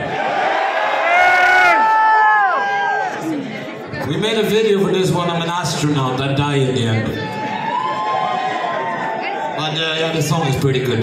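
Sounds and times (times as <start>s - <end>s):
audience cheering: 0.0s - 3.3s, 7.3s - 9.6s.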